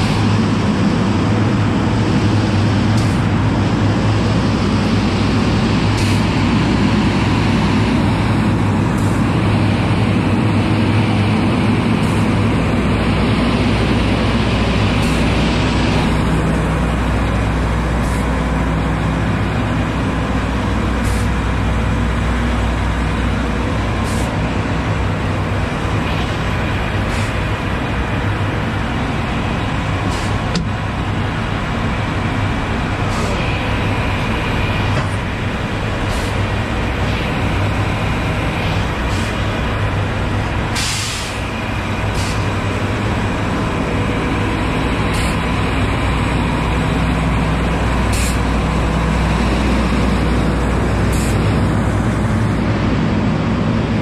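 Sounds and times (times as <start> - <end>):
diesel truck engine idling: 0.0 - 54.0.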